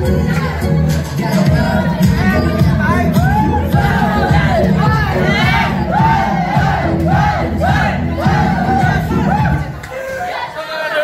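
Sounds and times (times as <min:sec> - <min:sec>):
loud dance music: 0:00.0 - 0:11.0
young people shouting and chanting: 0:00.0 - 0:11.0.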